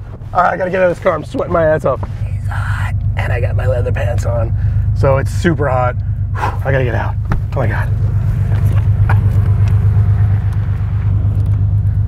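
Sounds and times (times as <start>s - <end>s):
car engine low rumble: 0.0s - 12.0s.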